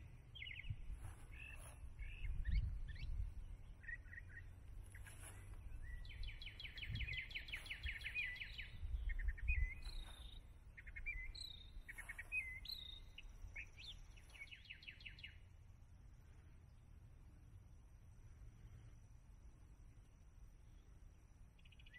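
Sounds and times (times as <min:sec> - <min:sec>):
songbirds singing: 0:00.0 - 0:17.6, 0:19.9 - 0:21.9.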